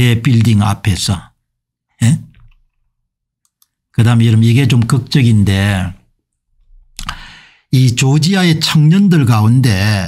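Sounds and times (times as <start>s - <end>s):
faint computer mouse clicks: 3.4s - 3.8s.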